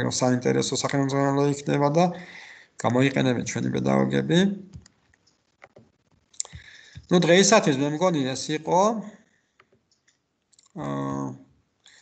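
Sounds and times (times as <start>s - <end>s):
man speaking: 0.0s - 4.7s, 6.4s - 9.2s, 10.8s - 11.4s.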